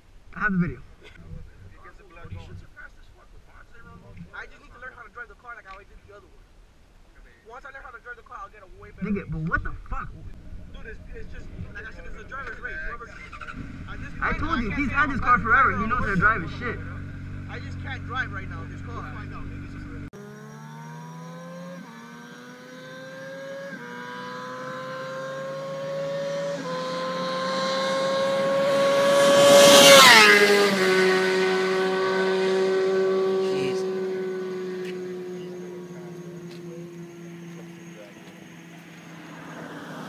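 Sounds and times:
car accelerating and shifting gears: 10.3 - 40.0.

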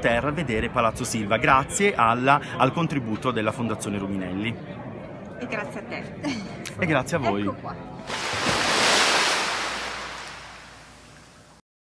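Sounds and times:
sea waves rushing: 8.1 - 11.5.

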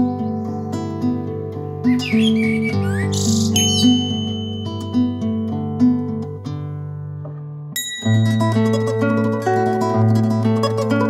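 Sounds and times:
bird calls and trill: 0.0 - 5.4
acoustic guitar music: 0.0 - 11.0.

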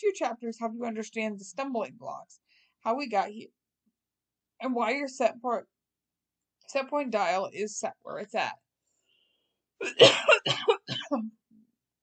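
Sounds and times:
woman coughing: 9.8 - 11.4.

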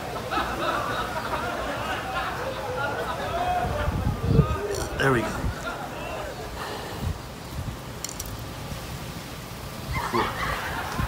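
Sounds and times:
wind buffeting microphone: 3.1 - 11.0.

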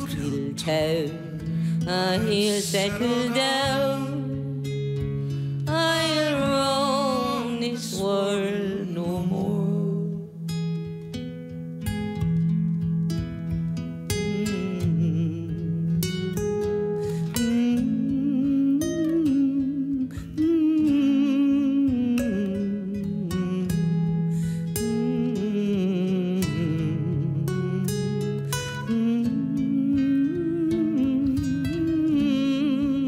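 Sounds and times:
acoustic guitars playing: 0.0 - 33.0.

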